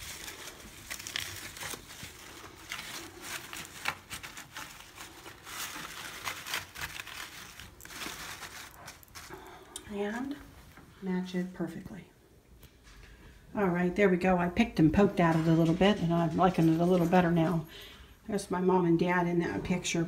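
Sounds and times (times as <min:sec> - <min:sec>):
artificial flowers rustling and crinkling: 0:00.0 - 0:18.4.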